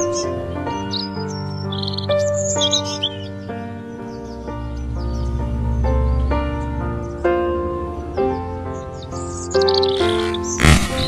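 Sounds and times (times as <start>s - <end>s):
birds chirping: 0.0s - 11.0s
soft piano music: 0.0s - 11.0s
loud sharp bang: 10.6s - 11.0s.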